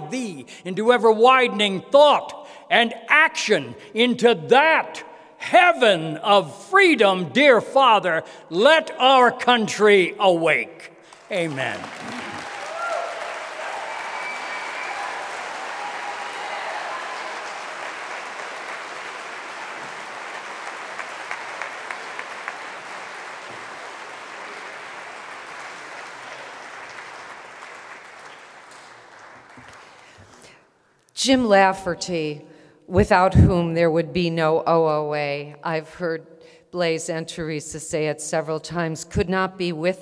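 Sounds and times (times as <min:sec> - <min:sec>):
audience applauding: 0:11.1 - 0:30.5.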